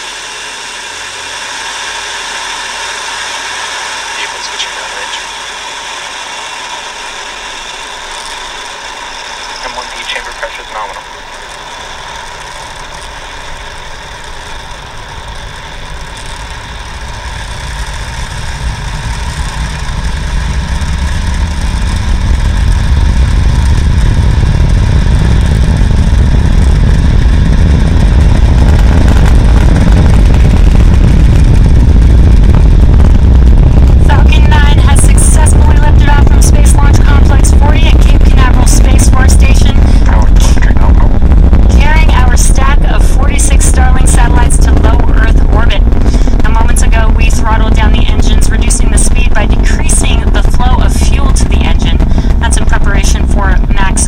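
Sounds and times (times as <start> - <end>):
distant rocket engine rumble: 0.0 - 54.0.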